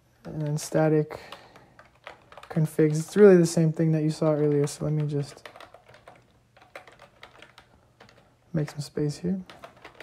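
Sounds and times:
faint keyboard typing: 0.2s - 10.0s.

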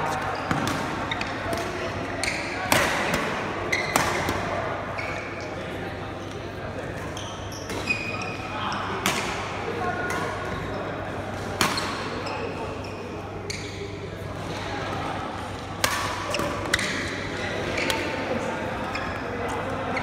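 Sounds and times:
background chatter: 0.0s - 20.0s.

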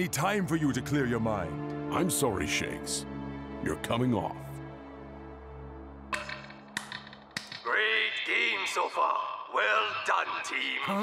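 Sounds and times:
background music: 0.0s - 11.0s
man speaking over loudspeaker: 7.7s - 11.0s.

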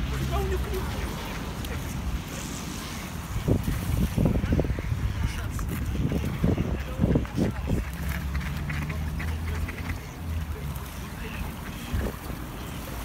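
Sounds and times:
ducks quacking: 6.4s - 13.0s.

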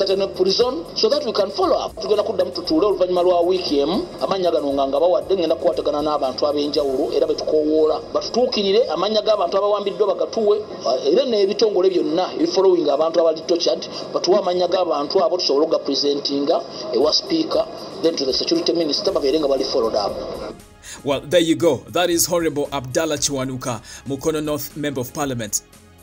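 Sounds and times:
man speaking: 0.0s - 25.7s
background music: 0.0s - 26.0s
person talking: 20.9s - 25.7s.

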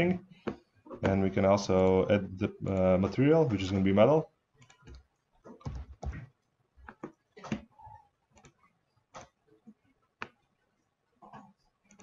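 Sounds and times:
computer mouse clicking: 8.4s - 9.3s, 11.3s - 12.0s.

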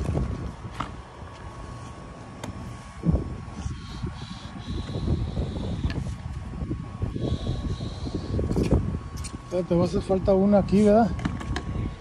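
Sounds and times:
wind buffeting microphone: 0.0s - 2.0s, 2.6s - 12.0s.

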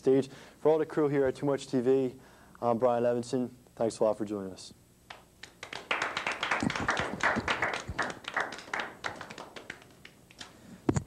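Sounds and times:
people clapping: 5.1s - 10.6s.

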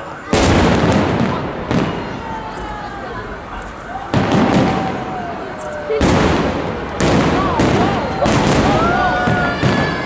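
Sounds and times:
fireworks rumble: 0.0s - 10.0s
loud firework bang: 0.2s - 2.5s, 4.0s - 10.0s.

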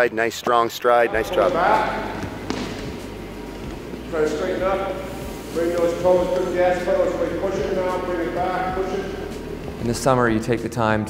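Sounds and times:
gymnasium low hum: 0.0s - 11.0s.

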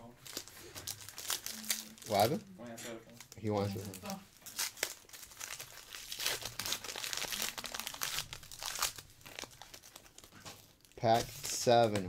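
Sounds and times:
plastic wrapper crinkling: 0.1s - 12.0s.

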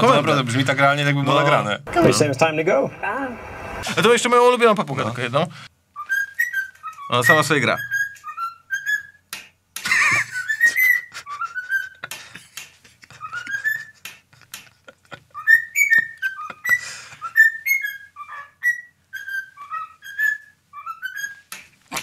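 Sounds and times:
cockatiel whistling: 6.0s - 9.2s, 10.1s - 12.1s, 13.1s - 14.0s, 15.3s - 21.5s.

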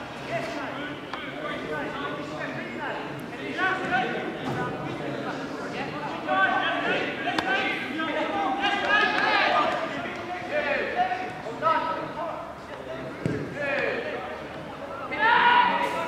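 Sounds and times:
players shouting: 5.7s - 16.0s.

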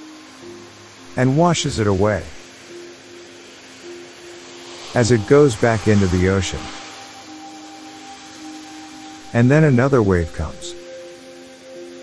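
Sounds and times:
soft meditation drone music: 0.0s - 12.0s
steady soft hiss: 0.0s - 12.0s.

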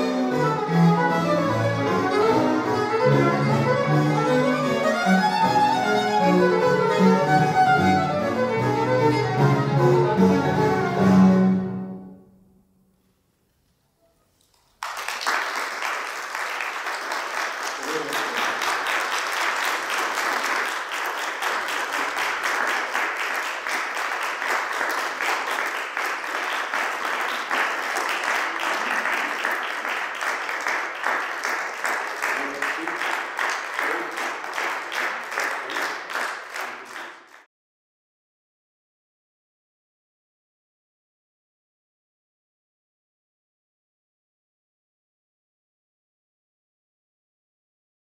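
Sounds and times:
audience applause: 14.5s - 37.5s.

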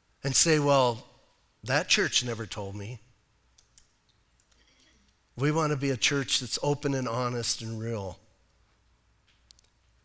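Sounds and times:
faint clicks: 9.2s - 10.0s.

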